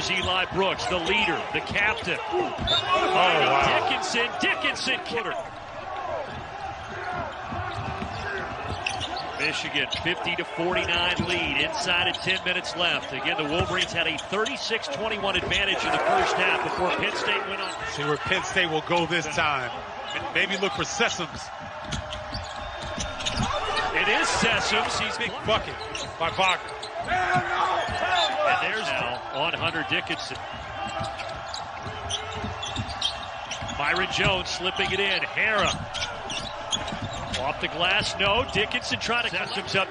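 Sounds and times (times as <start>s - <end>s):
sneakers squeaking on floor: 0.0s - 19.1s, 19.9s - 39.9s
basketball dribbling on hardwood: 30.4s - 39.8s.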